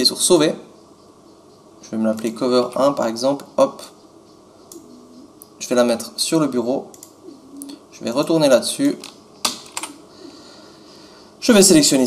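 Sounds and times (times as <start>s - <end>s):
computer mouse clicks: 6.9s - 7.2s.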